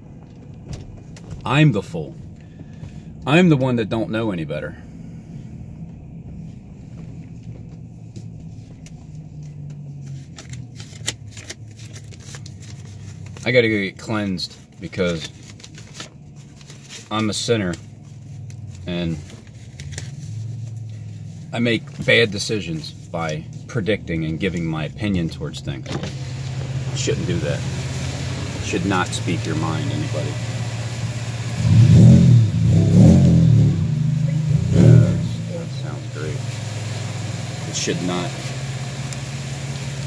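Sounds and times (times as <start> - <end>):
low hum inside vehicle: 0.0 - 40.0
truck engine revving: 18.5 - 40.0.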